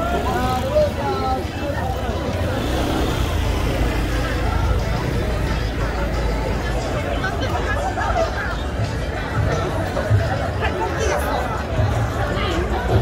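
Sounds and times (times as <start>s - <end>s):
low traffic rumble: 0.0s - 13.0s
passers-by talking: 0.0s - 13.0s.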